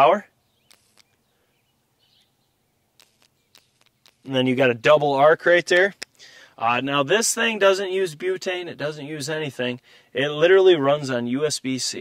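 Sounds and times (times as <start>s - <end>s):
faint high chirp: 0.4s - 4.3s.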